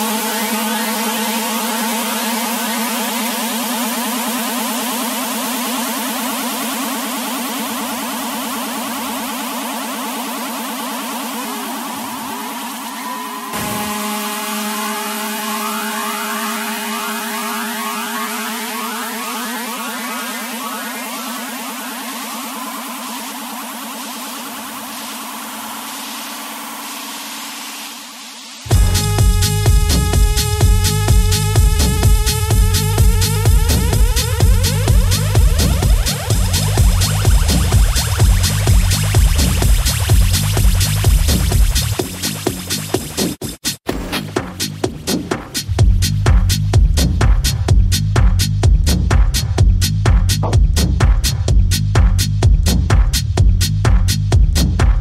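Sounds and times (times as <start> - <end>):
held synthesizer tones: 12.1 - 22.5.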